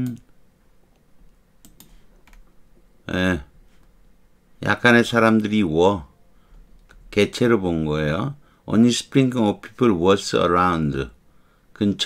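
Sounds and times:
faint computer clicks: 1.0 - 2.6.

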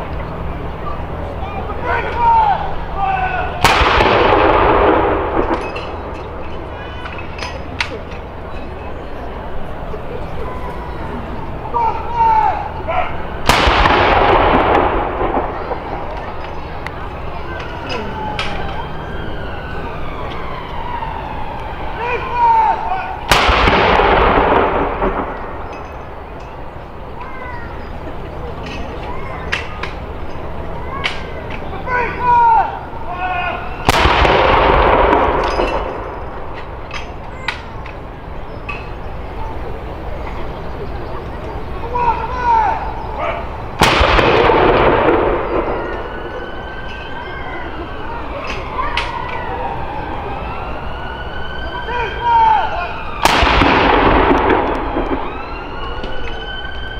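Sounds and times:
rolling echo: 0.0 - 56.9
gun firing blank round: 3.6 - 5.6, 13.5 - 15.5, 23.3 - 25.4, 33.9 - 35.8
artillery gun firing with echo: 3.6 - 6.7, 13.4 - 16.4, 23.3 - 26.1, 33.8 - 36.8, 43.8 - 46.2, 53.2 - 55.4.

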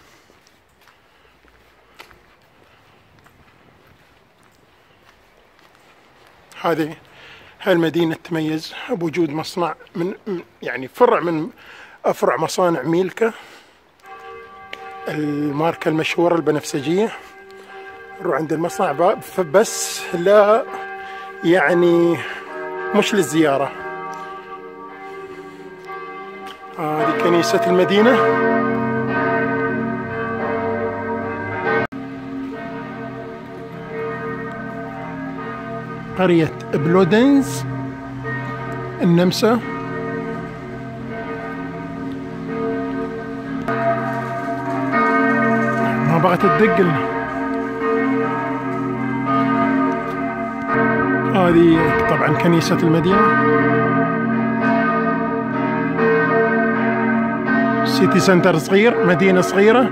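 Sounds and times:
church bells ringing: 0.0 - 59.9.

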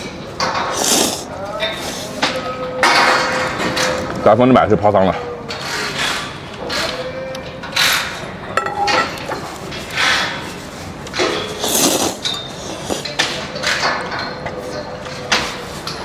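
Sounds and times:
person slurping noodles: 0.7 - 1.3, 11.6 - 13.0
metal ladle clinking on bowl: 8.6 - 9.3.

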